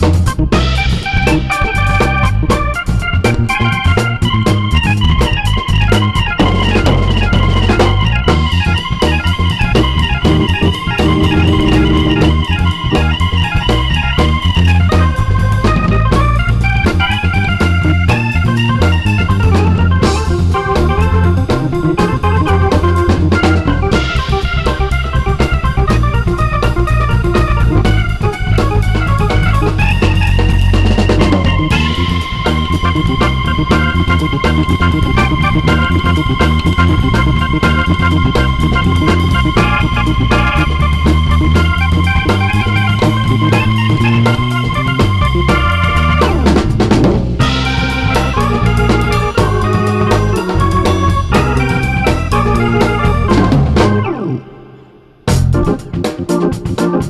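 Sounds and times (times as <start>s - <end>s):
drum kit: 0.0s - 57.0s
electric bass line: 0.0s - 57.0s
electronic keyboard melody: 0.0s - 57.0s.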